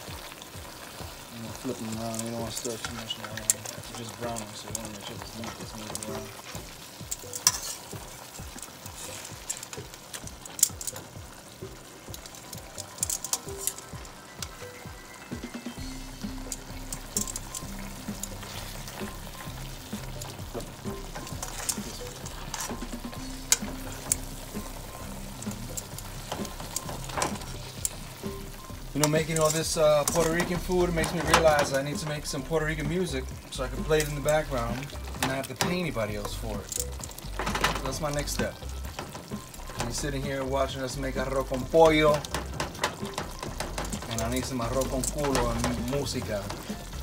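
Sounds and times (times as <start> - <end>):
meat and vegetables sizzling in oil: 0.0 - 47.0
metal tongs clicking against pot: 2.1 - 14.6, 16.2 - 32.4, 33.8 - 47.0.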